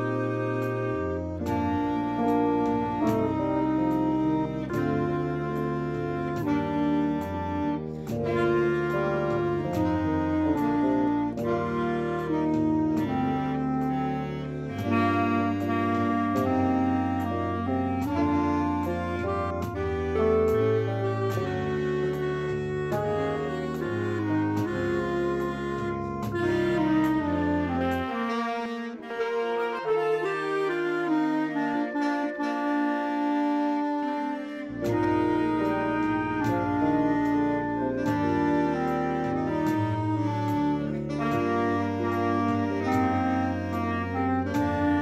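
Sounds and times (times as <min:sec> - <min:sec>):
tuba bass line: 0:00.0 - 0:45.0
wind band playing held chords: 0:00.0 - 0:45.0.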